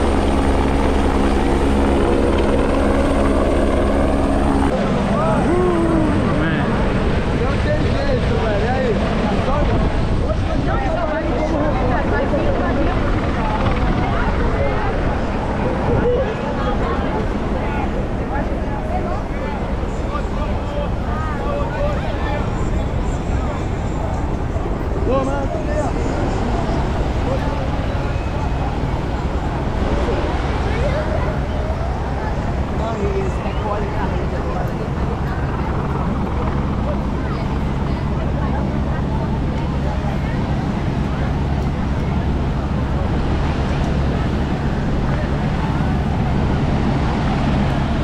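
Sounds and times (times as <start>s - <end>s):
crowd chatter: 0.0s - 48.0s
helicopter rotor drone: 0.0s - 48.0s.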